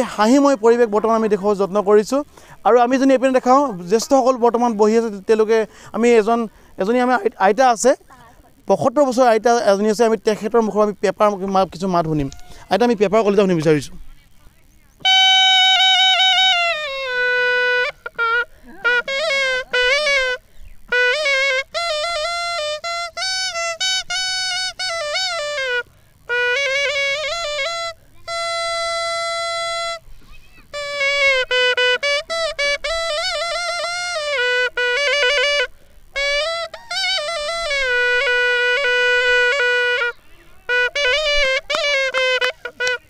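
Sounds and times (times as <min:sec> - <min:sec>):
reedy horn pipe melody: 0:15.0 - 0:43.0.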